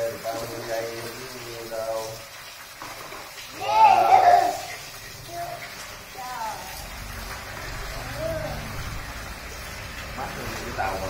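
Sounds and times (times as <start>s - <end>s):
child vocalising: 3.6s - 5.6s, 8.0s - 8.7s.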